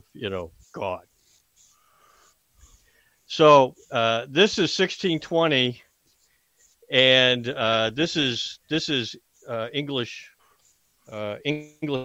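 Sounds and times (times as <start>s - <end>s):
faint breath noise: 0.0s - 4.5s, 5.7s - 6.9s, 9.2s - 11.9s.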